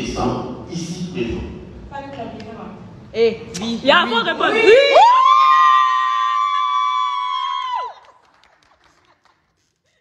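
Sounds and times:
guests cheering: 0:04.8 - 0:08.2.

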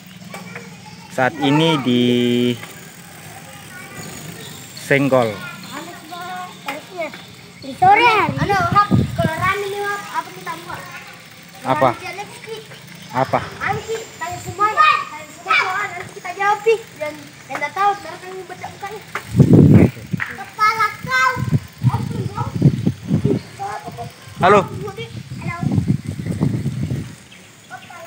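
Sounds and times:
bicycle riding along street: 0:00.0 - 0:28.0
children calling out: 0:00.0 - 0:28.0.

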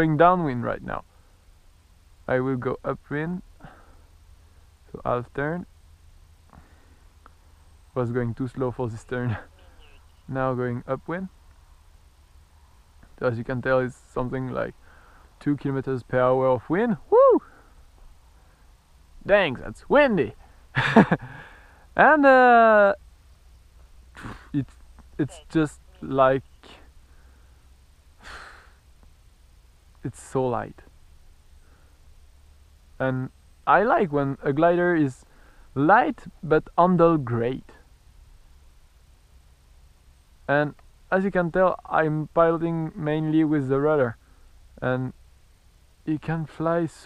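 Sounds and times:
faint low rumble: 0:00.0 - 0:47.0
man sighing: 0:03.6 - 0:04.1, 0:17.1 - 0:17.8, 0:21.2 - 0:21.9, 0:28.2 - 0:28.8
small tick: 0:40.7 - 0:40.9.

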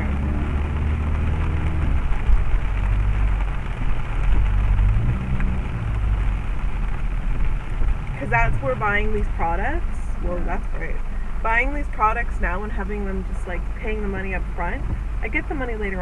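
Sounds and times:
engine and tyres droning: 0:00.0 - 0:16.0
rain pattering on car: 0:00.0 - 0:16.0.

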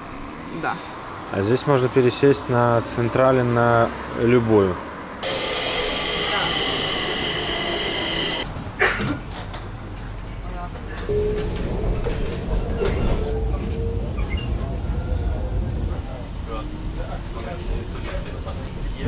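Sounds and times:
faint motor whine: 0:05.2 - 0:08.6
train high-pitched whine: 0:05.2 - 0:08.8
train low rumble: 0:05.2 - 0:19.0.

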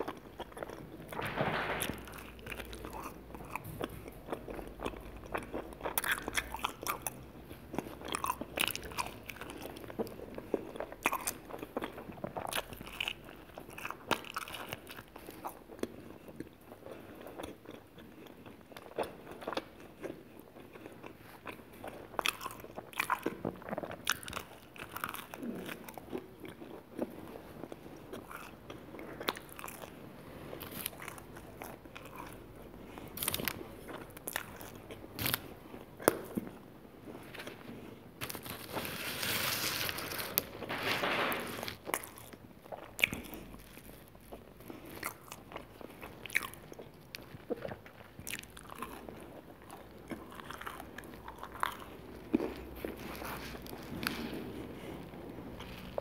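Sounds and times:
biting and chewing: 0:00.0 - 0:40.6, 0:41.6 - 0:56.0
crisp crust crunches: 0:38.2 - 0:42.3.

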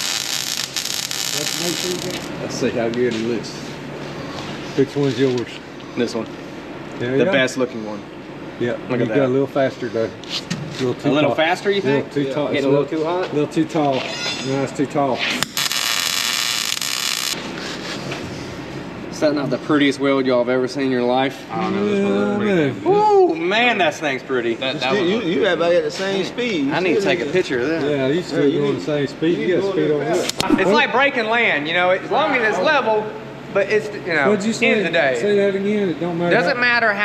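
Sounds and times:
welder arc crackling: 0:00.0 - 0:02.4, 0:15.4 - 0:17.4.

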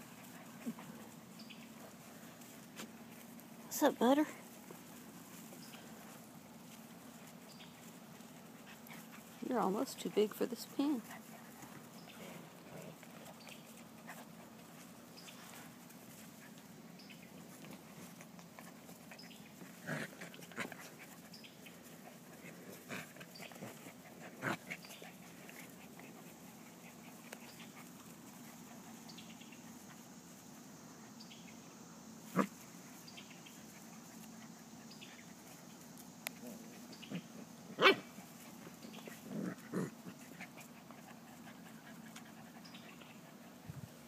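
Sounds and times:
puppy sounds: 0:00.0 - 0:31.2, 0:32.2 - 0:44.0.

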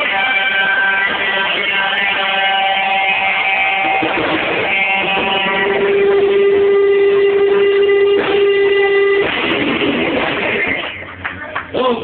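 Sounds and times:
live band playing: 0:00.0 - 0:11.7
electric guitar chords: 0:00.0 - 0:12.0.

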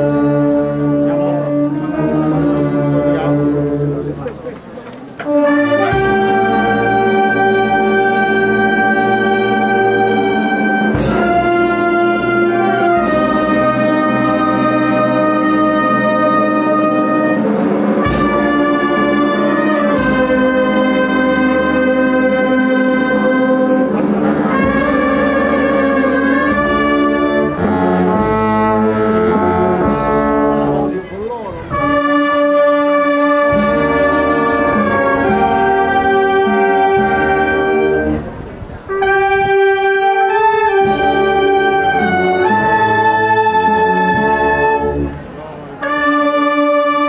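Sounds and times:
brass band playing solemn march: 0:00.0 - 0:47.0.

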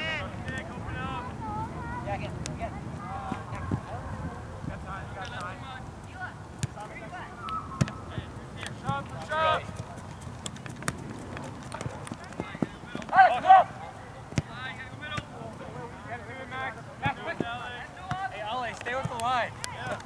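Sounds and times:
players shouting: 0:00.0 - 0:10.2, 0:10.8 - 0:20.0.

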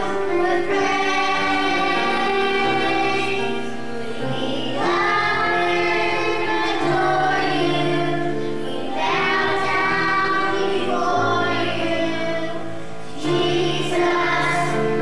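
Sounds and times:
children's choir singing: 0:00.0 - 0:15.0.

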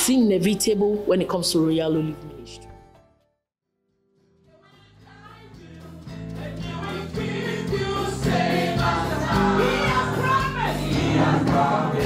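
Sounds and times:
instrumental backing: 0:05.0 - 0:12.0
gospel choir singing: 0:05.1 - 0:12.0.

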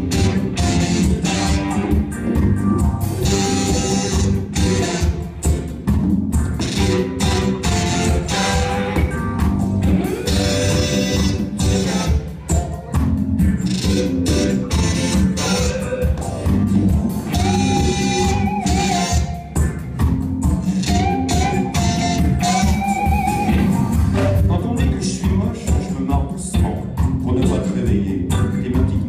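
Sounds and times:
live rock band playing: 0:00.0 - 0:29.0.

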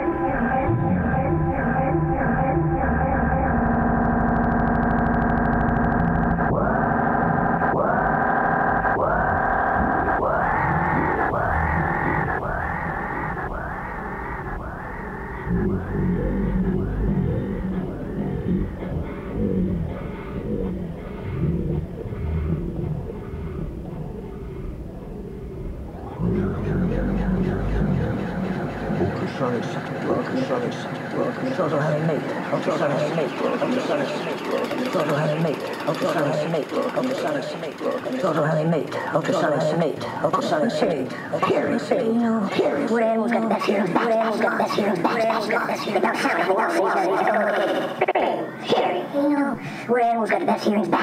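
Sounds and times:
modular synthesizer music: 0:00.0 - 0:48.6
processed voice fragments: 0:00.0 - 0:51.0.

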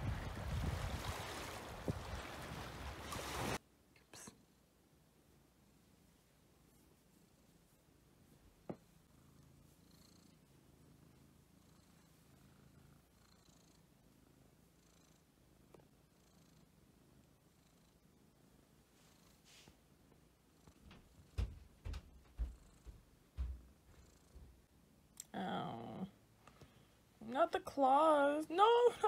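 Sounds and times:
cat purring: 0:05.5 - 0:26.3
short dull thumps: 0:20.8 - 0:24.6.

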